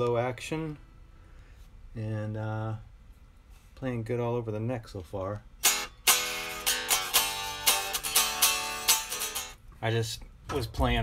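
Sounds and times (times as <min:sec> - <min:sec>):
electric guitar strummed: 0:05.6 - 0:09.6.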